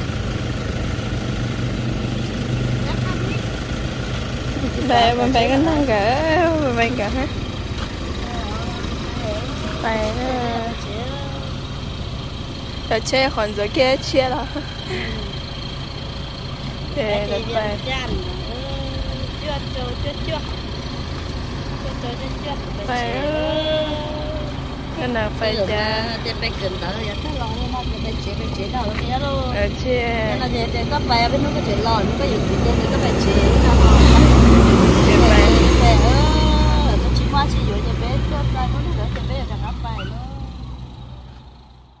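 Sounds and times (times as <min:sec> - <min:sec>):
van engine rumble: 0:00.0 - 0:42.0
person talking: 0:04.6 - 0:07.4, 0:08.1 - 0:11.6, 0:21.8 - 0:40.7.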